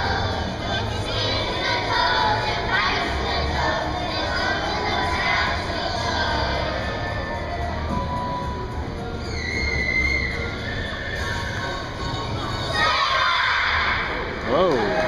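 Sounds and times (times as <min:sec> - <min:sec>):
children's choir singing: 0:00.0 - 0:08.8, 0:09.5 - 0:14.7.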